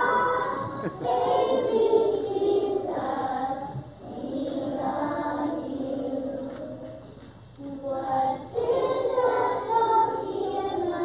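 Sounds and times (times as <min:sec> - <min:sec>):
young children singing: 0:00.0 - 0:11.0.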